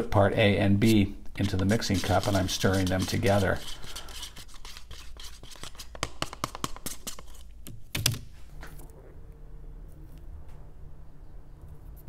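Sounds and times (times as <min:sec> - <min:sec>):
wooden sticks scraping paper cup: 0:00.8 - 0:07.5.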